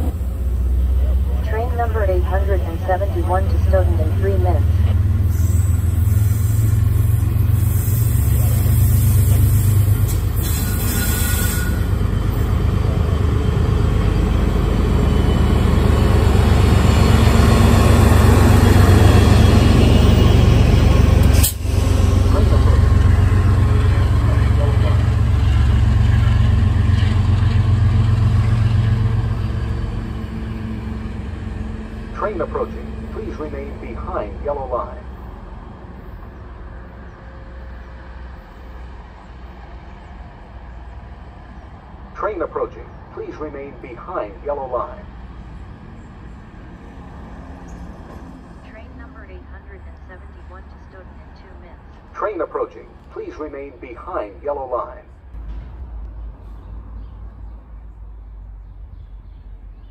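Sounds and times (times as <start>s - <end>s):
diesel locomotive and rail rumble: 0.0s - 59.9s.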